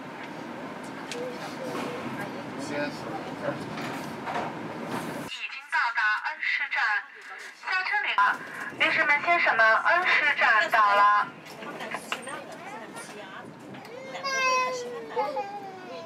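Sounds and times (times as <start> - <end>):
train running noise inside carriage: 0.0 - 5.3, 8.2 - 14.0.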